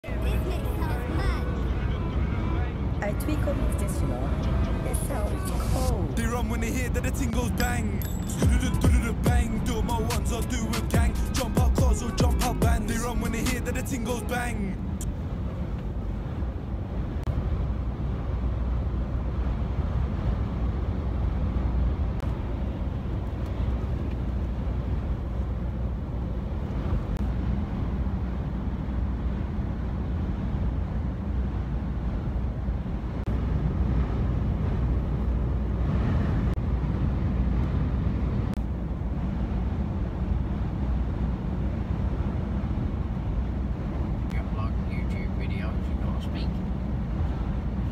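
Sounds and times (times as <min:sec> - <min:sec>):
lorry road and engine noise: 0:00.0 - 0:47.9.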